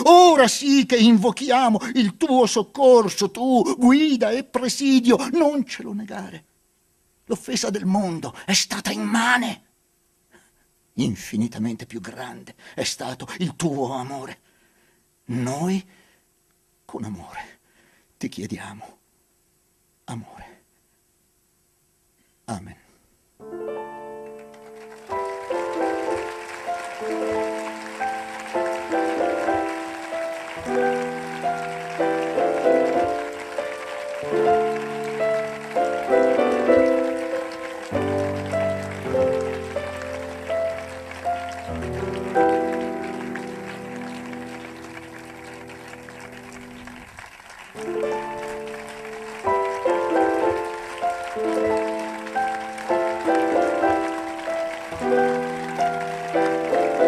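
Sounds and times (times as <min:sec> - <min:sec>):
piano music: 0:00.0 - 0:01.7, 0:23.4 - 0:57.0.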